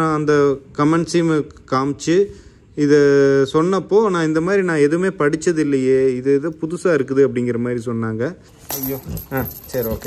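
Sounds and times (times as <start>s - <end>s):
man speaking: 0.0s - 10.0s
chain collar jingling: 8.6s - 10.0s.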